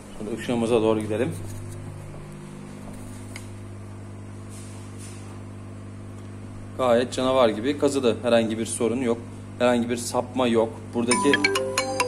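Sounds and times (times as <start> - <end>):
machine fans low electric hum: 0.0 - 12.0.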